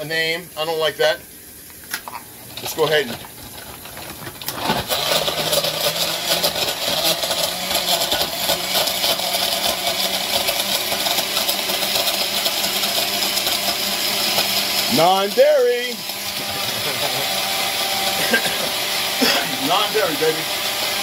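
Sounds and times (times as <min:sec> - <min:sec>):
blender running: 0:02.6 - 0:21.0.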